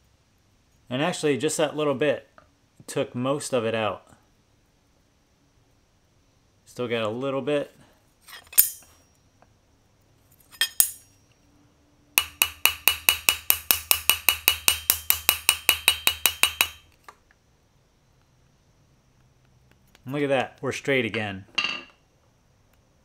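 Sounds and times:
hammer striking steel blade: 8.5s - 9.0s, 10.6s - 11.2s, 12.2s - 16.8s.

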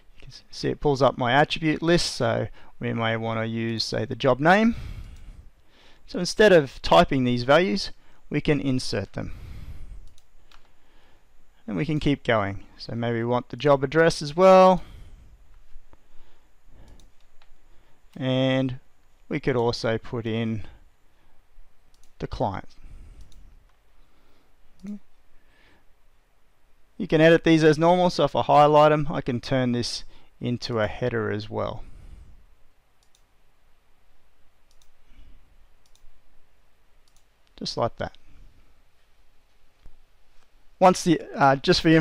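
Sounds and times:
faint mouse and keyboard clicks: 21.9s - 23.8s, 33.0s - 33.3s, 34.7s - 35.0s, 35.8s - 36.2s.

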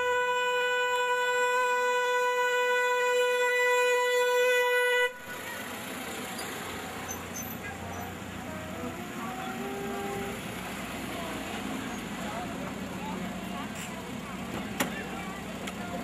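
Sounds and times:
car horn long note: 0.0s - 5.4s, 8.5s - 10.5s
street and traffic noise: 0.0s - 16.0s.

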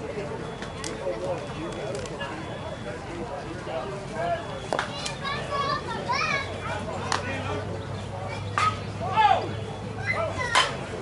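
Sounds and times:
people calling and chattering: 0.0s - 11.0s.

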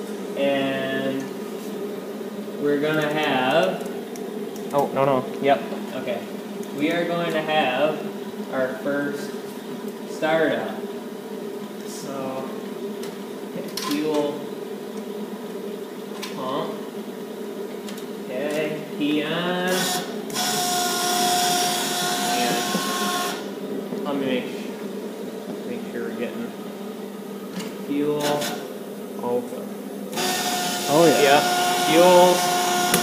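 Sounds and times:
electric fuel pump whining: 19.0s - 24.1s, 27.4s - 28.7s, 29.9s - 33.0s.

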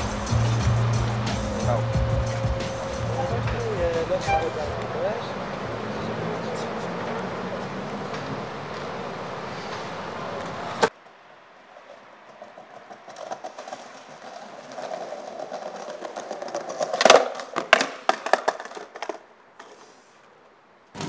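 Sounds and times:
skateboard wheels rolling on concrete: 0.0s - 21.0s
skateboard clacking on ground: 11.7s - 20.0s.

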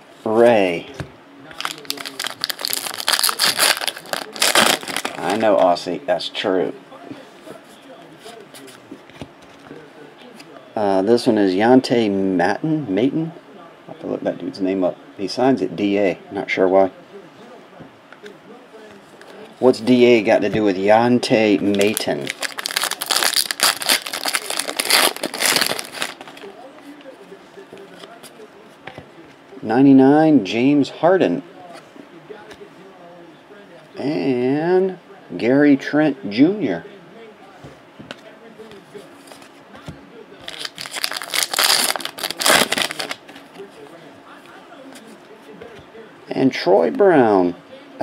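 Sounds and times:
foil wrapper crinkling: 1.6s - 5.6s, 21.6s - 26.6s, 40.4s - 43.7s.

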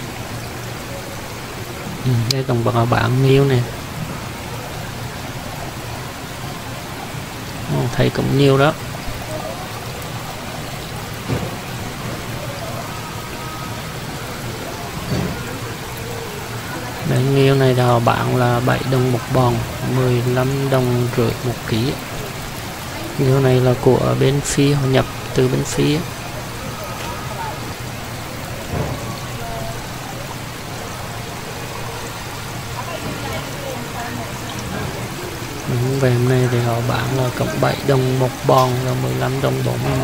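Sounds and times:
water streams splashing into tank: 0.0s - 40.0s.

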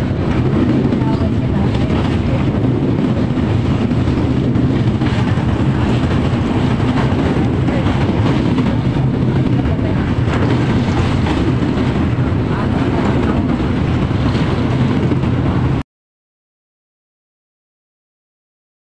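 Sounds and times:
train rumbling over bridge: 0.0s - 15.8s.

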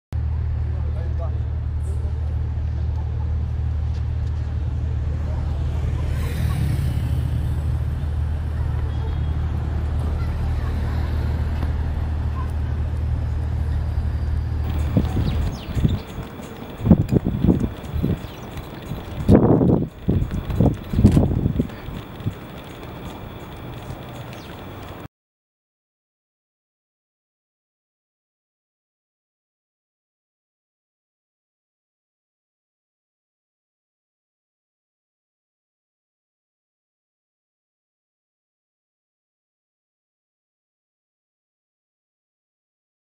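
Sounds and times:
city road traffic rumble: 0.2s - 25.1s
voices: 0.8s - 14.0s, 14.6s - 25.1s.

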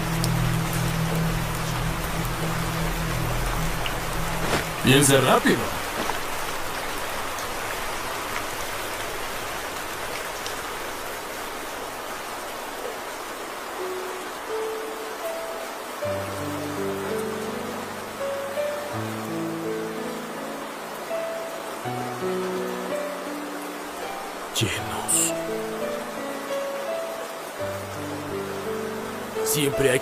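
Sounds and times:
slow melody of held notes: 0.0s - 5.5s, 13.3s - 30.0s
rain hissing: 0.0s - 30.0s.

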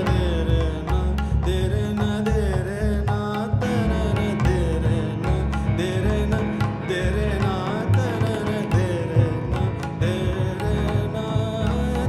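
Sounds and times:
man singing ornamented line: 0.0s - 12.0s.

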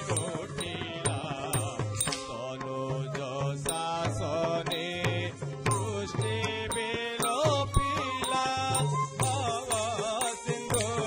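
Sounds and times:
small cymbals struck: 0.0s - 2.6s, 3.7s - 11.0s
voice singing: 0.0s - 11.0s.

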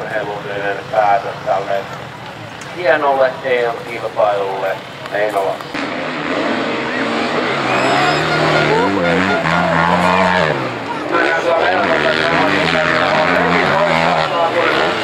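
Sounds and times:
motorcycle engines revving: 0.0s - 15.0s.

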